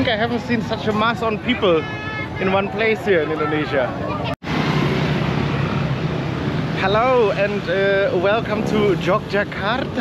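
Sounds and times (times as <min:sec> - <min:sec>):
road noise: 0:00.0 - 0:10.0
motorbikes riding past: 0:03.8 - 0:10.0.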